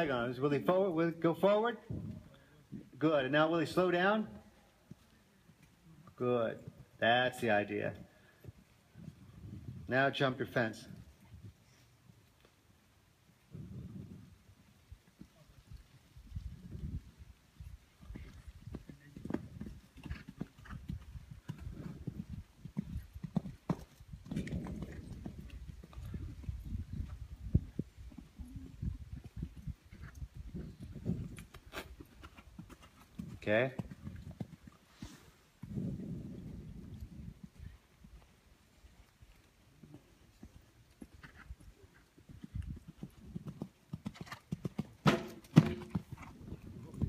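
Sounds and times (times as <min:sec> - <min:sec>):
horse hoofbeats on sand: 0:18.0 - 0:35.0, 0:36.9 - 0:47.0.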